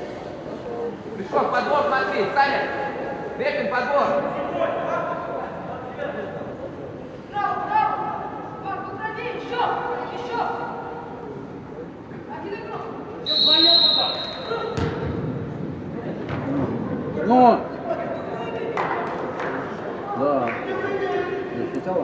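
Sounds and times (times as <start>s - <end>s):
referee's whistle blast: 13.3s - 14.8s
football being kicked: 14.8s - 15.2s.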